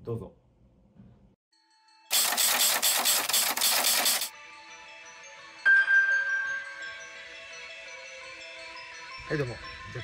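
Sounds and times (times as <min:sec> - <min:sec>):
harsh pulsing rattling noise: 0:02.1 - 0:04.3.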